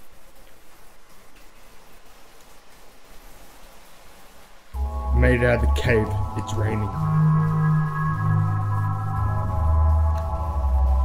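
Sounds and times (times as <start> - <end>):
rain hissing: 0.0 - 11.0
electronic hip-hop beat: 4.8 - 11.0.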